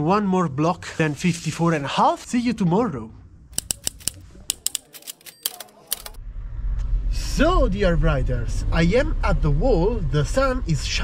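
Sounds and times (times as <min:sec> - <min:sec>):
typewriter key clicks: 0:03.6 - 0:06.2.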